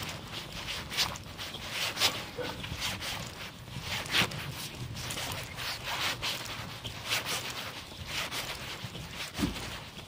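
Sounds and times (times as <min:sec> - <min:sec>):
clothing rustle: 0:00.0 - 0:10.0.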